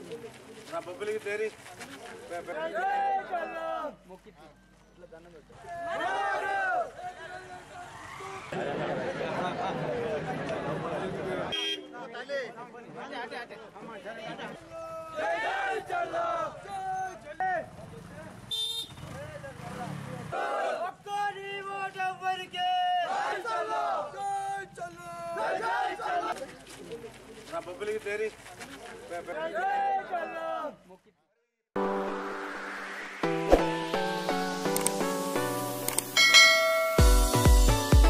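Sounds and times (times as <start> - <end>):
crowd voices: 5.6 - 16.9
motorcycle horn beep: 11.5 - 12.0, 18.5 - 19.0
electronic dance music: 31.8 - 38.0
bell-like chime: 36.2 - 37.6.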